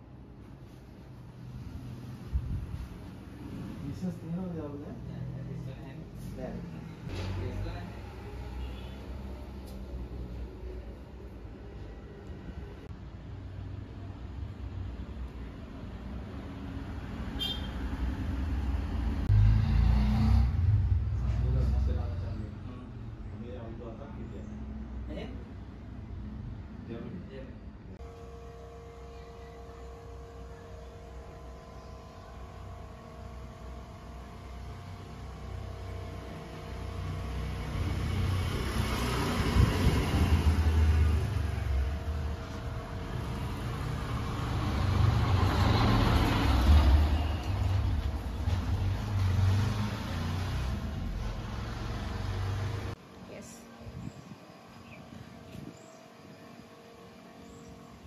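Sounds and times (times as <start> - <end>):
vehicle engine rumble passing: 1.1 - 27.0, 28.0 - 54.2.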